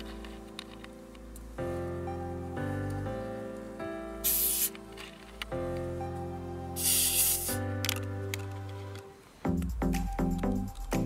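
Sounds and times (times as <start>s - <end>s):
soda bottle hissing open: 4.2s - 4.8s, 6.8s - 7.7s.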